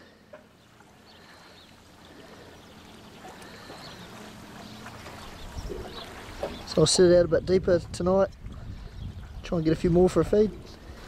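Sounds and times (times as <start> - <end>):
lake water lapping: 0.0 - 11.0.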